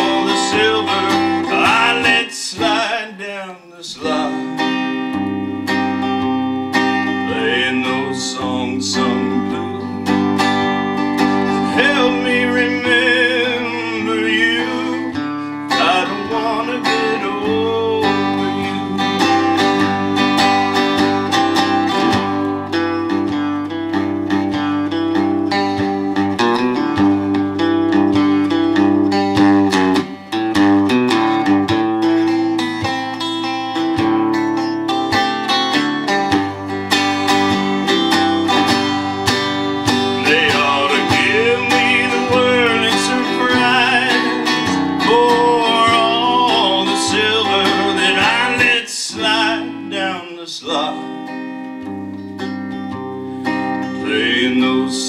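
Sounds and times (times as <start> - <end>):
country electric guitar playing: 0.0 - 55.0.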